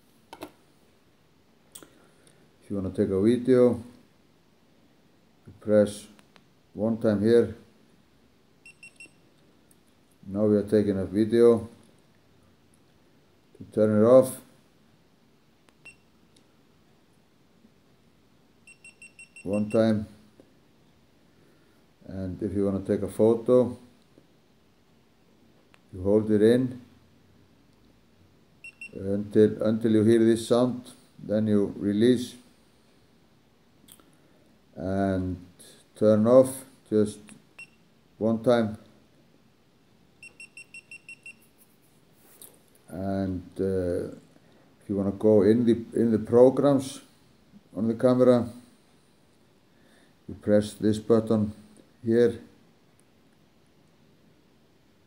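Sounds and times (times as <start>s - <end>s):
camera high beeps: 18.7s - 19.8s, 40.2s - 41.5s.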